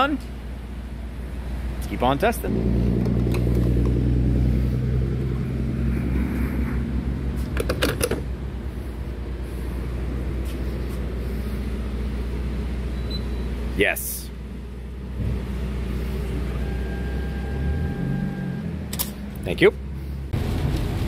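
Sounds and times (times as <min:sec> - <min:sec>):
fuel nozzle clicks and clunks: 0:07.5 - 0:08.3.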